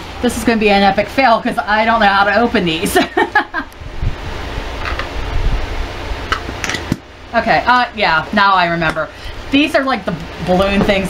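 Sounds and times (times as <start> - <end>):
rushing noise with low rumble: 3.8 - 6.2.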